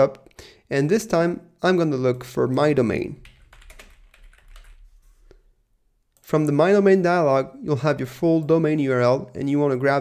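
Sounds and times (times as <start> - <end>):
typing on a keyboard: 3.2 - 4.8.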